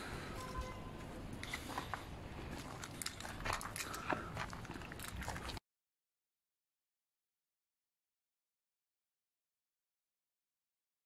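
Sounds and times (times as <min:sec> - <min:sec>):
outdoor background noise: 0:00.0 - 0:05.6.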